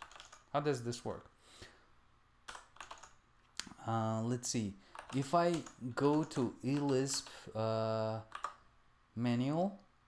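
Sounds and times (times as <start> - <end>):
keyboard keystrokes: 0.0 - 0.5, 2.5 - 3.2, 4.9 - 7.3, 8.3 - 8.6.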